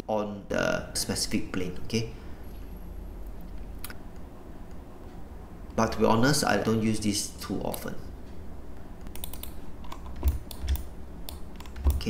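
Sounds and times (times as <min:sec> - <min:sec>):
computer keyboard clicks: 0:09.0 - 0:12.0.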